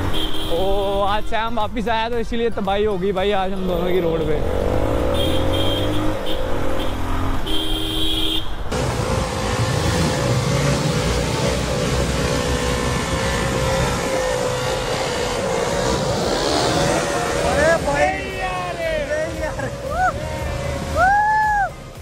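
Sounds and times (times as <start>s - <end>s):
road noise: 0.0s - 22.0s
motorcycle engine: 4.1s - 7.9s, 8.6s - 21.1s.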